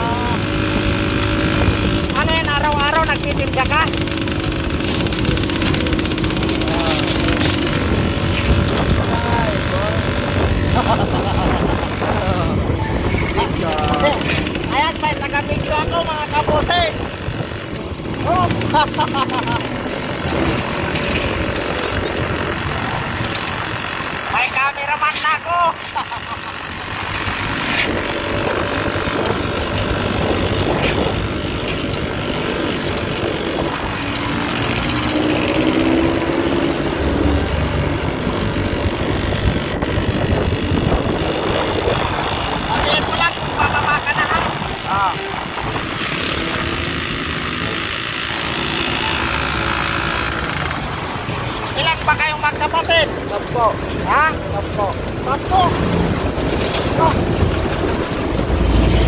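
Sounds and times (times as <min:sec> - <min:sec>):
motorcycle engine running: 0:00.0 - 0:59.0
road and wind noise: 0:00.0 - 0:59.0.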